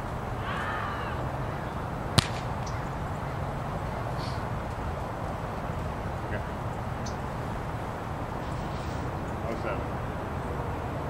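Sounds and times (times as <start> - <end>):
low outdoor background rumble: 0.0 - 11.0
volleyball slapping hands: 2.2 - 2.7.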